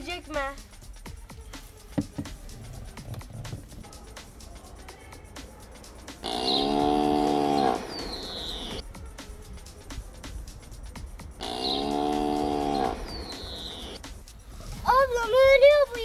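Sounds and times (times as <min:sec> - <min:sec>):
faint background music: 0:00.0 - 0:16.0
cow mooing: 0:06.2 - 0:08.1, 0:11.4 - 0:13.2.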